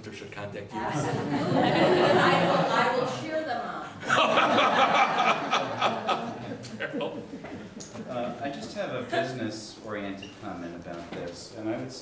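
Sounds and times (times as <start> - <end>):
people chuckling and laughing: 0.8 - 3.3, 3.9 - 9.4.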